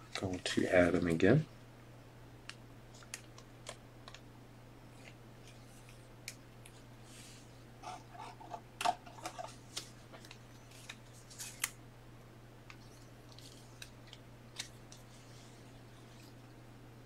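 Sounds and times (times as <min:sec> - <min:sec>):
steady low hum: 0:00.0 - 0:17.0
card rustles: 0:09.1 - 0:11.8, 0:12.7 - 0:16.4.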